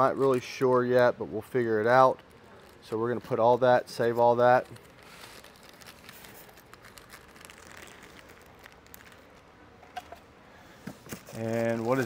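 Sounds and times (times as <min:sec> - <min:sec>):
packaging rustling and crinkling: 0:00.3 - 0:10.2, 0:10.8 - 0:12.0.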